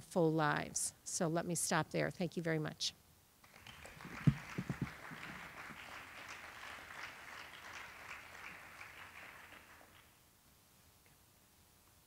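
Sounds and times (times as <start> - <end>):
distant audience applause: 3.4 - 10.1.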